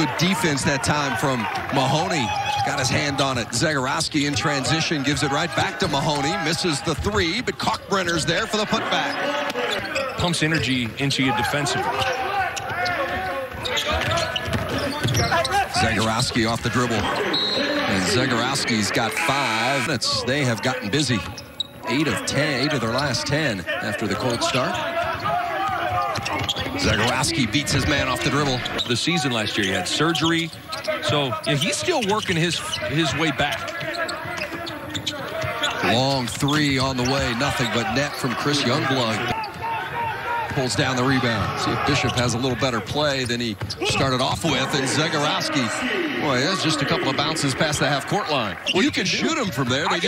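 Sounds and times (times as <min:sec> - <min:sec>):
voices calling out: 0:00.0 - 0:50.0
basketball bouncing on hardwood: 0:13.9 - 0:15.3.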